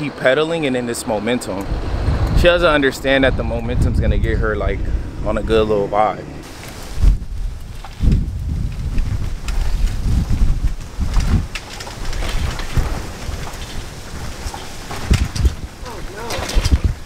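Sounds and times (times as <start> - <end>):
wind buffeting microphone: 0.0 - 17.0
small clicks and rattles: 7.6 - 17.0.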